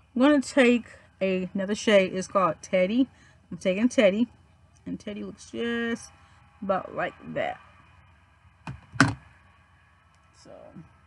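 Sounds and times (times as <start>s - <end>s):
knocks close to microphone: 8.6s - 9.2s.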